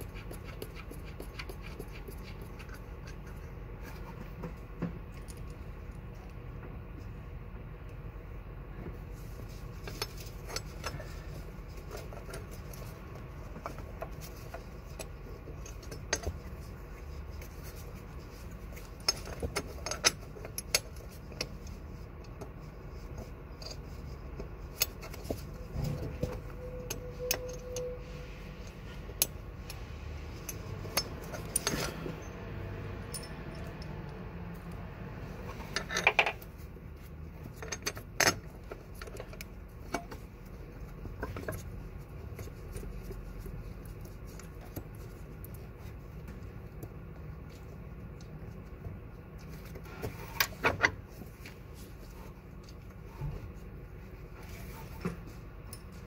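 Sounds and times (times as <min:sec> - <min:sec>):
metallic clinks of tools and bolts: 0:30.4 - 0:34.0.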